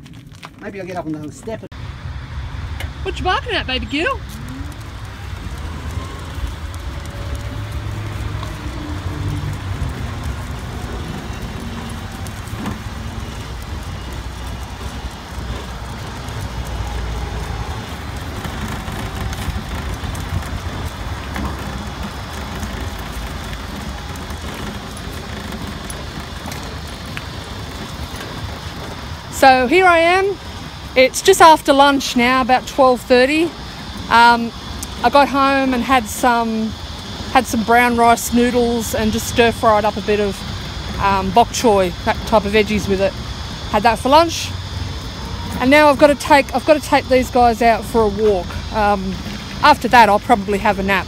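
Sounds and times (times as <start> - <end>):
wheelchair rolling on concrete: 0.0 - 51.0.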